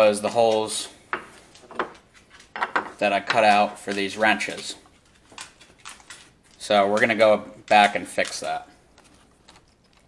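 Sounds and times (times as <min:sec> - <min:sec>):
metal tools knocking on wood: 0:01.1 - 0:03.0.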